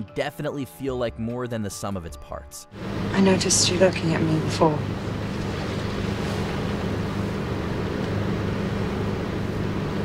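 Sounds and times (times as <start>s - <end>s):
low engine hum: 2.8s - 10.0s
road noise inside vehicle: 2.8s - 10.0s.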